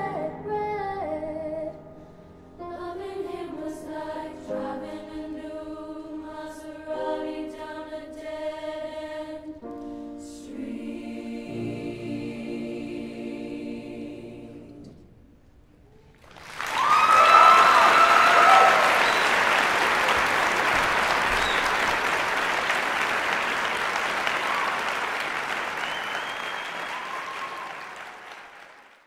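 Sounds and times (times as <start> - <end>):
audience whooping: 16.0 - 29.0
audience applause: 16.2 - 29.0.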